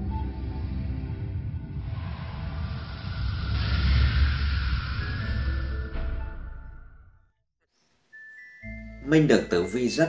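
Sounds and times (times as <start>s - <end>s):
deep rumble: 0.0s - 7.3s
hissing whoosh: 0.5s - 6.8s.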